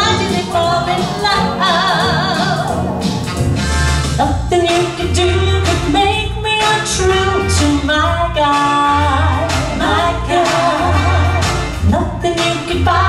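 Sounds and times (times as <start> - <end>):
instrumental accompaniment with bass: 0.0 - 13.0
women singing in close harmony: 9.0 - 13.0.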